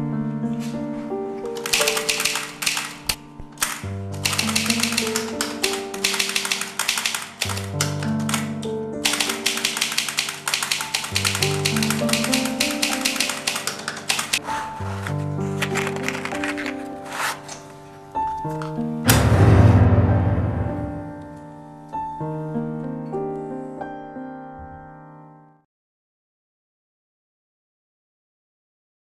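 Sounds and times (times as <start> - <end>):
typewriter keystrokes clattering: 1.6 - 14.5, 15.4 - 16.8.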